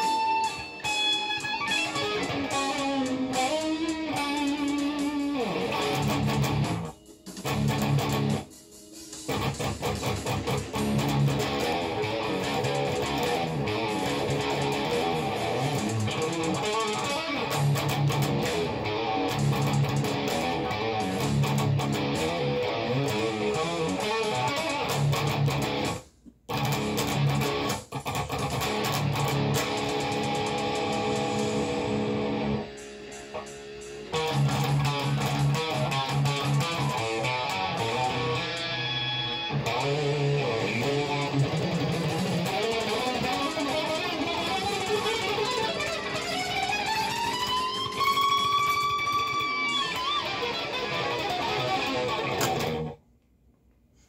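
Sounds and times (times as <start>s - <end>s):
electric guitar lead: 0.0s - 53.0s
recorded backing track: 0.0s - 54.0s.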